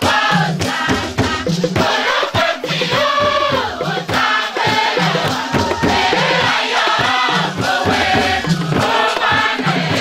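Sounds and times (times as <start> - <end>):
chorus singing over a beat: 0.0 - 10.0.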